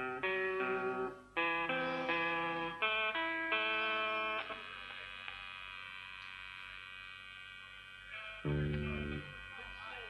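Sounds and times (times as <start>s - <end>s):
electric guitar chord: 0.0s - 5.0s, 8.4s - 9.8s
mains hum: 0.0s - 10.0s.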